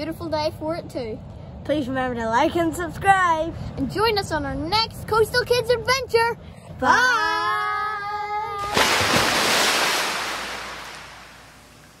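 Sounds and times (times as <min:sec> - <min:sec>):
rushing surf-like hiss: 0:08.7 - 0:11.8.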